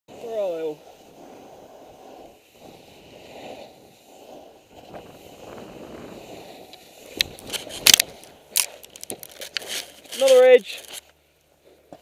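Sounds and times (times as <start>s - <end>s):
wind on microphone: 0.1s - 8.5s
snowboard sliding on snow: 0.1s - 12.0s.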